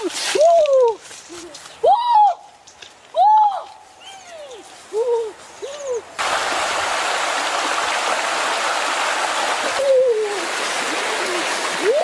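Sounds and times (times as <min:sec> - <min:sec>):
loud rush of water: 0:06.2 - 0:12.0.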